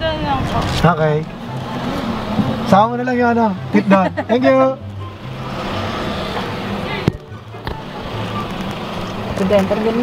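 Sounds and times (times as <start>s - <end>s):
car engine and tyre hum: 0.0s - 10.0s.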